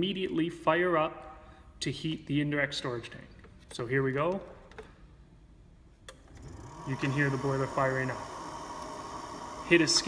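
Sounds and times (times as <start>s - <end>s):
boiler hissing: 6.6s - 10.0s.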